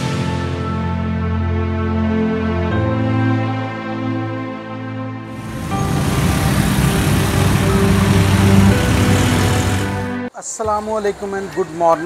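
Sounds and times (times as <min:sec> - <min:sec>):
soft background music: 0:00.0 - 0:12.0
street traffic: 0:05.3 - 0:12.0
small engines running past: 0:05.4 - 0:10.2.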